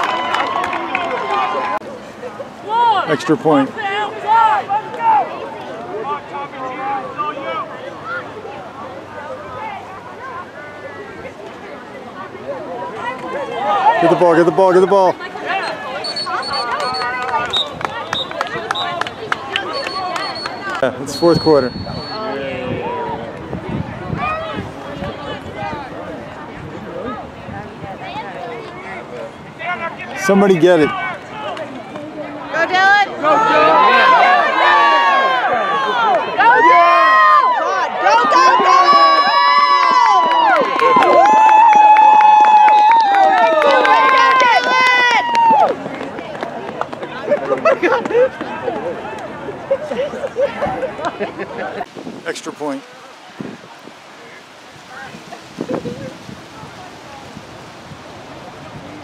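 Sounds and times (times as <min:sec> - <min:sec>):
crowd yelling and screaming: 0:00.0 - 0:02.0, 0:02.6 - 0:10.8, 0:12.4 - 0:26.2, 0:32.5 - 0:46.2
faint distant voices: 0:00.0 - 0:41.1, 0:43.4 - 0:59.0
wind on microphone: 0:21.4 - 0:28.1, 0:51.7 - 0:52.4, 0:53.1 - 0:59.0.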